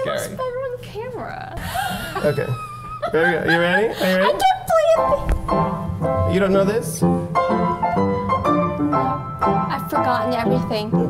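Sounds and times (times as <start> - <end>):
upright piano playing: 3.1 - 11.0.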